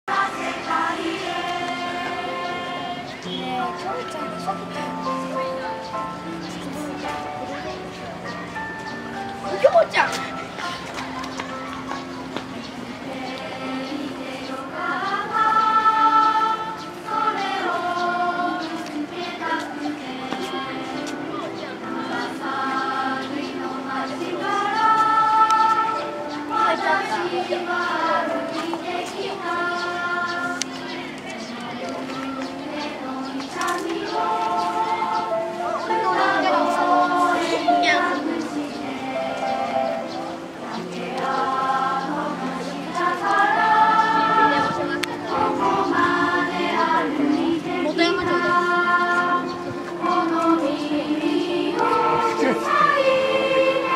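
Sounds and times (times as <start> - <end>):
children singing in unison: 0.0 - 9.1, 10.3 - 53.9.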